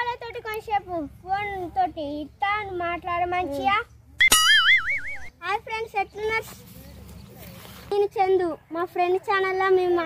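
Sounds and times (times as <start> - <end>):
child speaking: 0.0 - 4.0, 5.3 - 6.8, 7.9 - 10.0
cartoon boing sound effect: 4.2 - 5.3.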